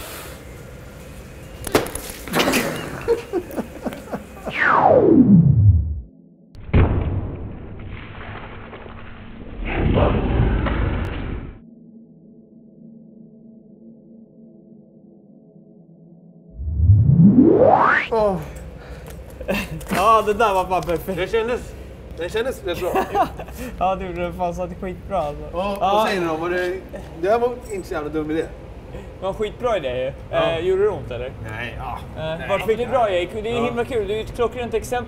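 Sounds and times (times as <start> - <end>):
falling pitch glide effect: 4.5 - 6.1, 16.5 - 18.2
noisy crash and knocks: 6.6 - 11.6.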